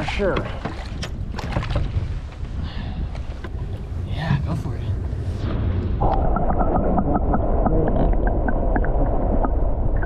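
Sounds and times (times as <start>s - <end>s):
choppy water around boat: 0.0s - 5.4s.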